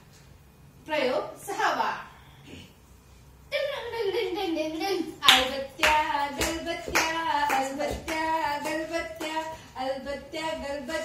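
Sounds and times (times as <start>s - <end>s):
hand claps: 5.2s - 9.5s.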